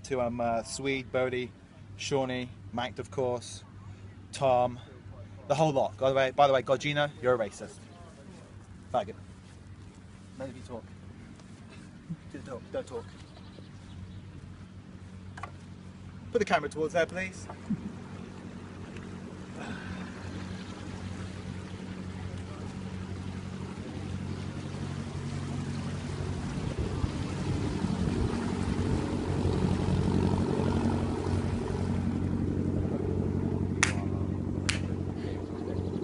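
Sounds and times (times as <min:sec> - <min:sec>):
boat engine droning: 0:00.0 - 0:36.0.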